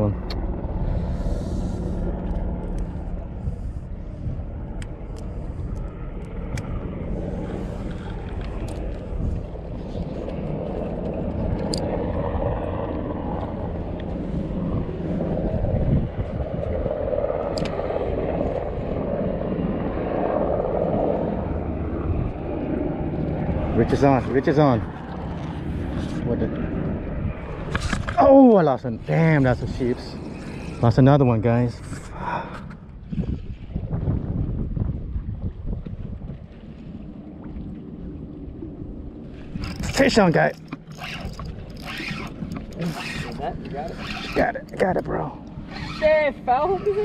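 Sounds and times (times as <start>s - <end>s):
steady low rumble: 0.0s - 47.0s.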